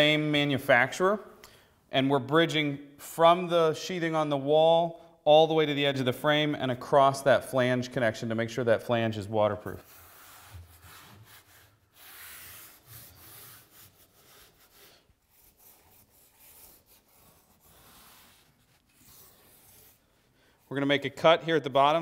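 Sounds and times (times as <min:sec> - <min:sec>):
hand rubbing membrane strip: 0:09.8 - 0:21.4.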